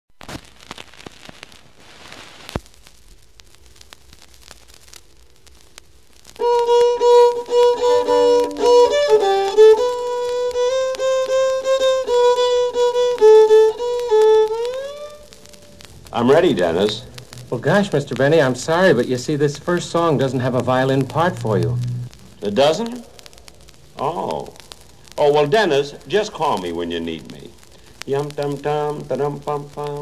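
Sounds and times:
vinyl hiss and crackle: 0:00.1 - 0:30.0
solo violin: 0:06.4 - 0:15.5.

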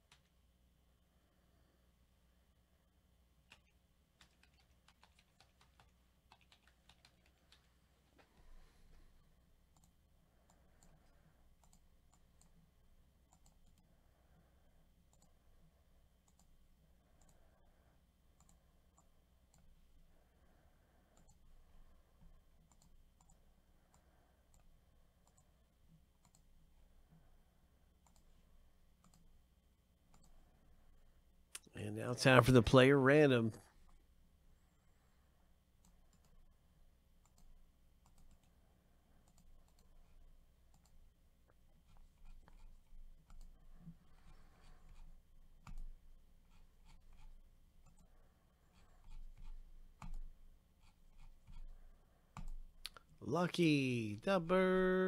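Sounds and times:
computer keyboard keystrokes: 0:00.0 - 0:00.4, 0:03.5 - 0:07.7, 0:45.6 - 0:45.9, 0:49.1 - 0:50.3.

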